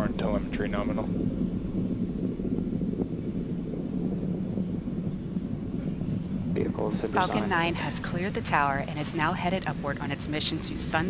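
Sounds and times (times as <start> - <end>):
rocket engines rumbling: 0.0 - 11.0.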